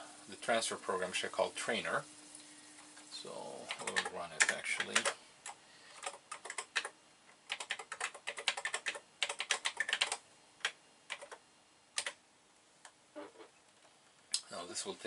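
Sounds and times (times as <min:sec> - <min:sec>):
computer keyboard typing: 0:03.7 - 0:11.4, 0:12.0 - 0:12.2.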